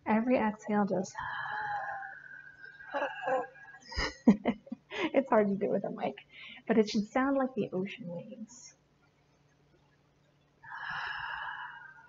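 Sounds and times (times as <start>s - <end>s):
woman breathing: 1.2s - 4.0s, 6.2s - 6.7s, 10.6s - 12.0s.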